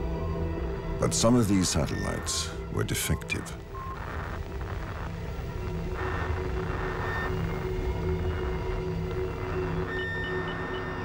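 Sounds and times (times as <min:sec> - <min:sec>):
steady low rumble: 0:03.6 - 0:10.7.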